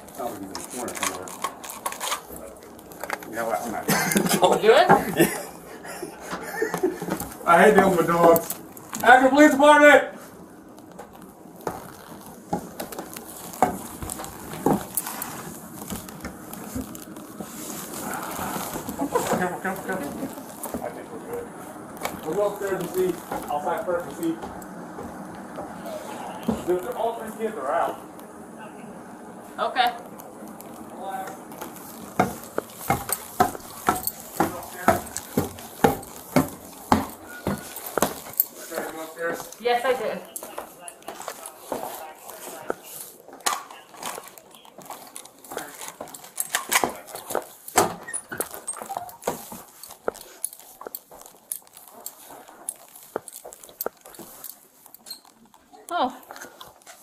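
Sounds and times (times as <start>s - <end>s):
footsteps walking: 0.0s - 57.0s.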